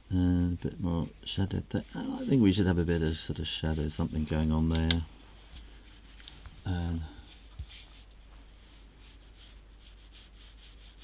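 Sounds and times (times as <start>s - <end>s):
brush scratching on paper: 1.3s - 4.6s, 5.4s - 6.5s, 7.2s - 11.0s.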